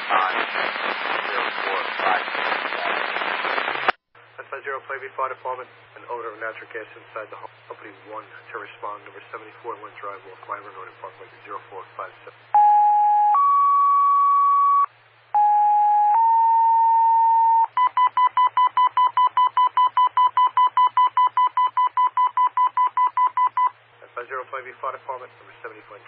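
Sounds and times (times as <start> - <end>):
dispatcher speaking over radio: 0.1 - 3.0, 4.4 - 12.4
rapid beeps: 12.6 - 23.7
two-tone paging tones: 12.6 - 23.7.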